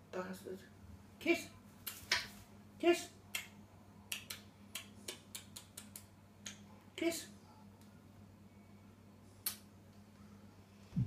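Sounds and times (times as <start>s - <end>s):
faint kissing smacks and clicks: 4.1s - 6.6s, 9.4s - 9.7s.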